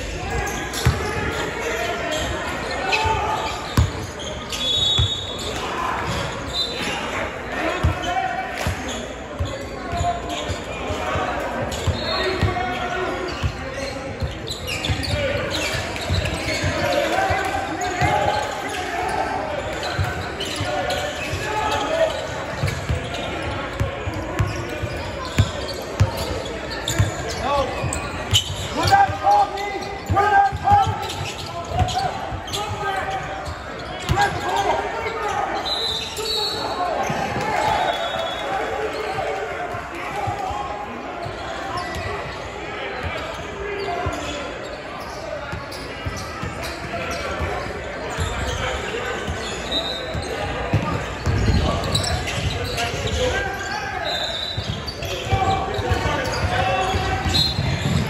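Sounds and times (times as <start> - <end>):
voices and shouts in a hall: 0.0 - 58.0
basketball bouncing: 0.8 - 1.1, 3.8 - 4.0
players running on court: 45.0 - 58.0.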